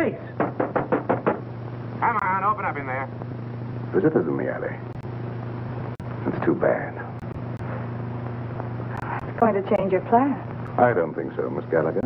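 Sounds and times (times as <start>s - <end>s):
knocking on a door: 0.4s - 1.5s.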